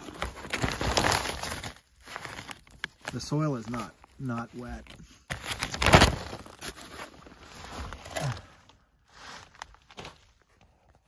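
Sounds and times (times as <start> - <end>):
plastic sheeting rustling and scraping: 0.0 - 8.4.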